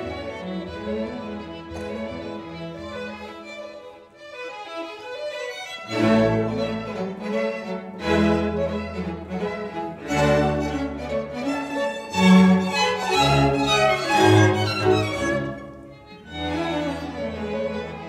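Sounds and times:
string orchestra playing: 0.0 - 18.0.

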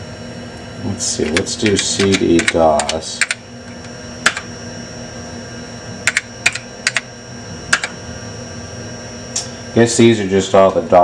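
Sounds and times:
steady low hum: 0.0 - 11.0
keyboard key clicks: 1.3 - 3.4.

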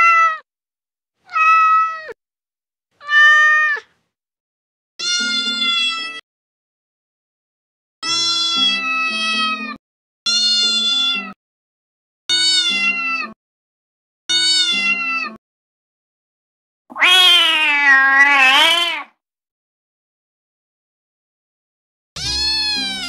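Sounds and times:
cat meowing: 0.0 - 0.4, 1.3 - 2.2, 3.0 - 3.9, 5.0 - 6.2, 14.3 - 15.4, 16.9 - 19.1, 22.2 - 23.0.

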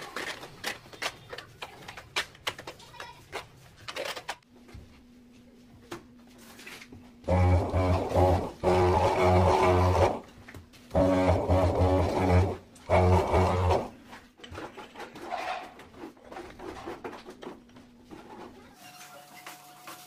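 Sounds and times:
electric tile vibrator buzzing: 7.2 - 10.3, 10.9 - 14.0.

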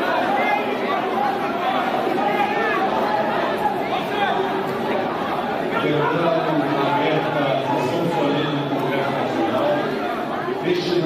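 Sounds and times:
many voices talking and calling out: 0.0 - 11.0.

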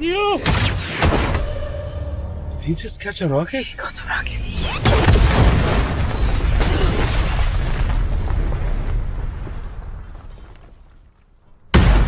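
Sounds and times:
music: 1.0 - 3.4
explosion boom and rumble: 4.8 - 10.4, 11.7 - 12.0.

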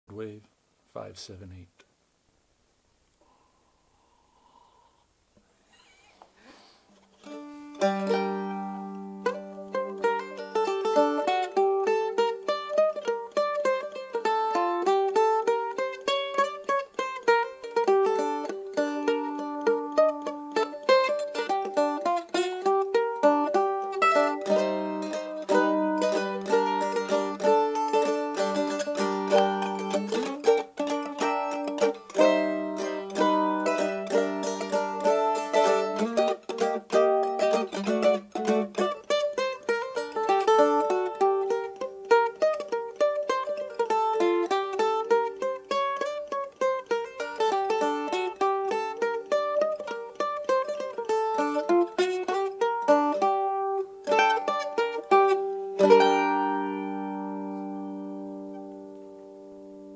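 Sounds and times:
mandolin picking quick melody: 7.2 - 59.9.

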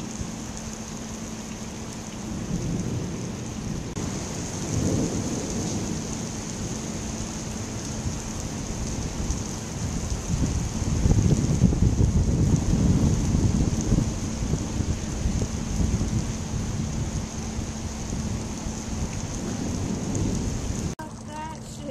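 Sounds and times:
heavy rain on pavement: 0.0 - 21.9
thunder rumbling: 0.0 - 21.9.

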